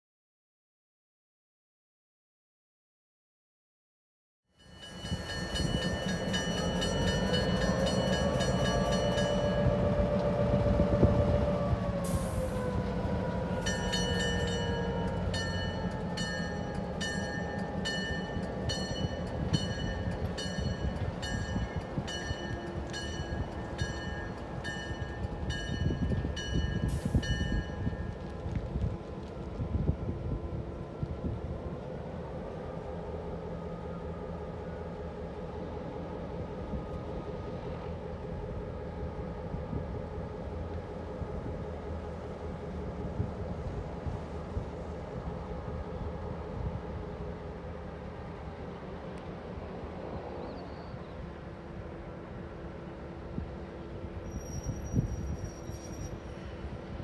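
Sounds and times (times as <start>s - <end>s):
diesel locomotive engine: 4.6s - 57.0s.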